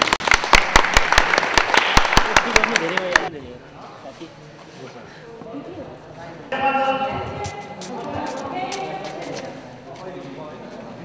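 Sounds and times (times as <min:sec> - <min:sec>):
audience clapping: 0:00.0 - 0:03.3.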